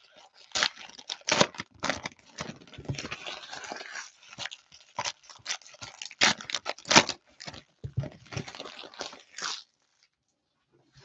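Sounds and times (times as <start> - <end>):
wrappers rustling and crinkling: 0.0 - 10.1
wrapper sharp crackles: 0.4 - 7.6.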